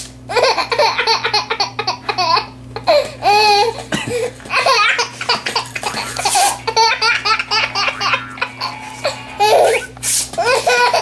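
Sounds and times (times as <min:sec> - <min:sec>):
baby laughing: 0:00.3 - 0:11.0.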